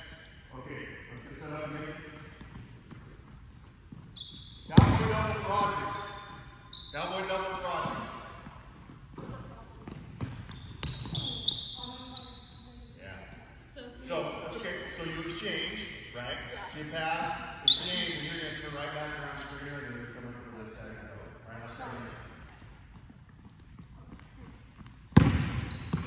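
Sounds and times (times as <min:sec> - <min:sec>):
basketball bouncing on wooden floor: 0:07.8 - 0:11.5, 0:25.2 - 0:26.0.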